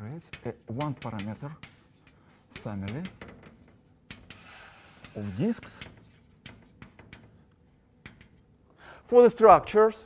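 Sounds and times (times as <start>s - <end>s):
chalk tapping on board: 0.0s - 8.5s
chalk scratching on blackboard: 0.1s - 8.5s.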